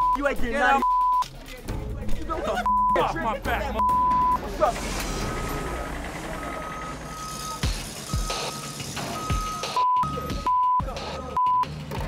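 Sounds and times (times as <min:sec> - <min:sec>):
steady bleep tone: 0:03.8 - 0:04.4, 0:05.2 - 0:11.7
reversing alarm beeping: 0:03.8 - 0:11.7.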